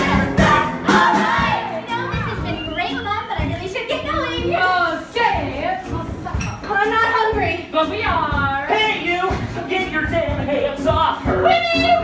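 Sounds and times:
voices singing and calling out: 0.0 - 6.0
pop music backing beat: 0.0 - 12.0.

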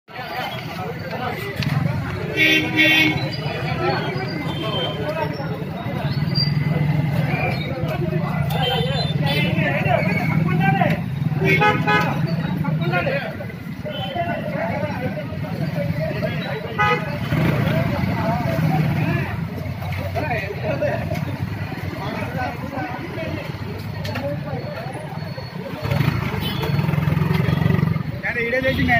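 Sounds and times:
crowd talking: 0.1 - 28.9
traffic hum: 0.1 - 28.9
vehicle horns tooting: 2.2 - 5.2, 8.4 - 9.8, 11.3 - 12.5, 16.6 - 17.5, 26.3 - 27.7.

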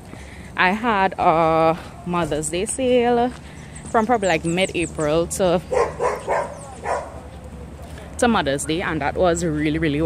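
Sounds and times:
dog barking: 5.7 - 7.3.

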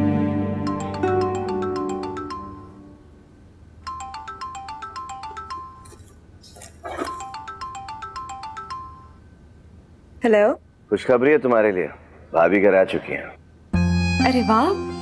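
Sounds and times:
marimba-like phone ringtone: 0.6 - 2.9, 3.8 - 6.0, 7.1 - 9.2.

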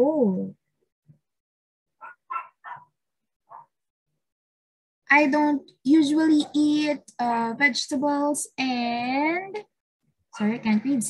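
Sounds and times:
dog barking faintly: 2.0 - 3.8.

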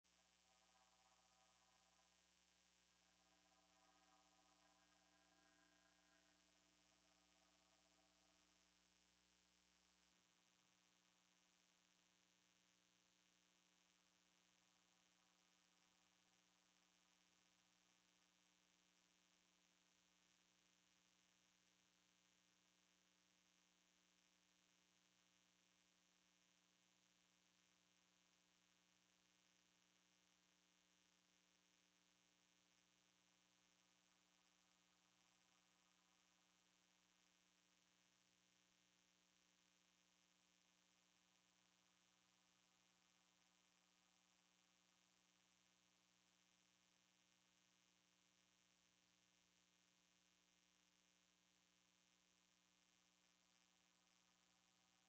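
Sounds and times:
faint electrical hum: 0.0 - 55.0
low hiss: 0.0 - 55.0.

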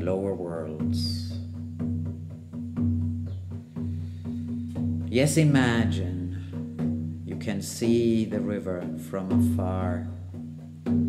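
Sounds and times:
drum beating steady pulse: 0.0 - 11.0.

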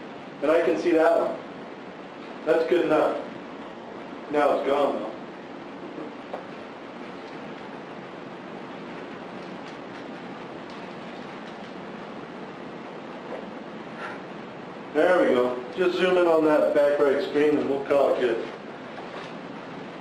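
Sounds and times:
steady room tone hiss: 0.0 - 20.0.

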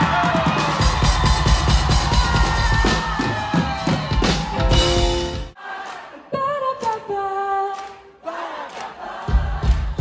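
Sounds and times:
drum kit beat: 0.0 - 5.6, 9.2 - 10.0.

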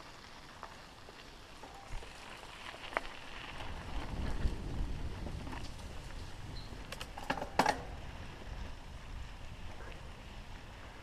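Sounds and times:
bike tyres rolling on dirt: 0.0 - 11.0
bike clicks and rattles: 0.4 - 8.6
wind rumble on microphone: 1.8 - 11.0.

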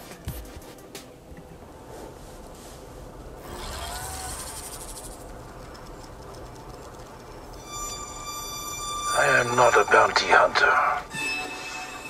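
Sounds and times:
high steady tone: 7.3 - 12.0.

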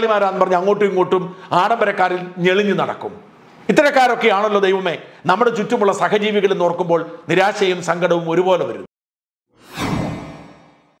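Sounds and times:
whoosh sound effect: 9.6 - 11.0.

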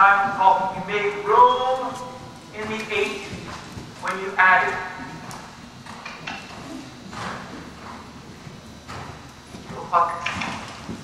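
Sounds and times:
person speaking: 0.0 - 3.4, 4.0 - 5.2
horse hoofbeats on dirt: 0.0 - 11.0.

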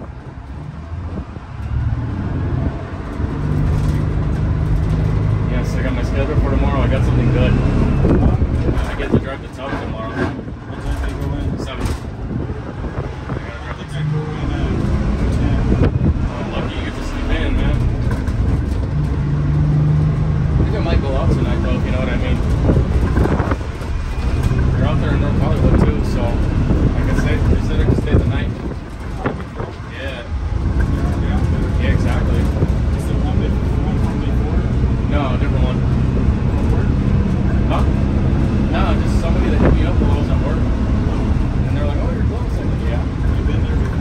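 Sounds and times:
diesel bus engine droning: 0.0 - 44.0
road and wind noise: 0.0 - 44.0.

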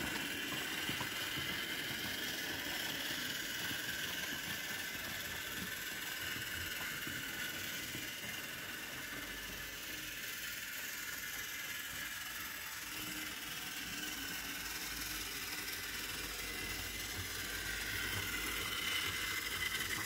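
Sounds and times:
model trains whirring on track: 0.0 - 20.0.

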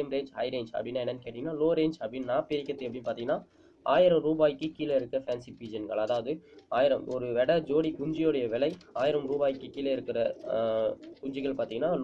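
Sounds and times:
man talking: 0.0 - 12.0
pigeon cooing: 6.4 - 12.0.

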